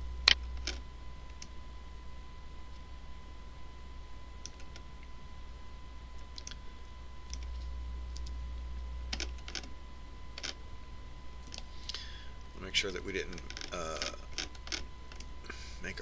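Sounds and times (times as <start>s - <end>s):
low electrical hum: 0.0s - 16.0s
computer keys and mouse clicks: 7.3s - 8.4s.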